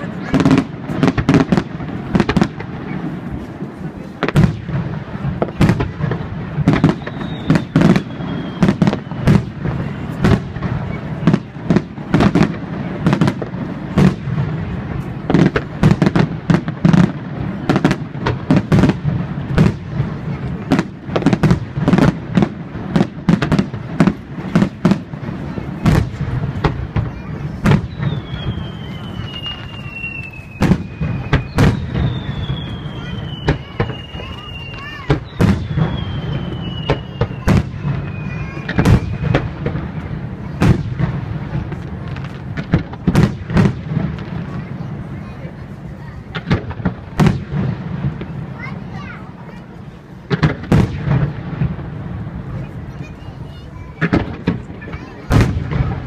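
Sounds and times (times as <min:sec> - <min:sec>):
falling whistles of fireworks: 0:00.0 - 0:56.0
fireworks bangs: 0:00.0 - 0:56.0.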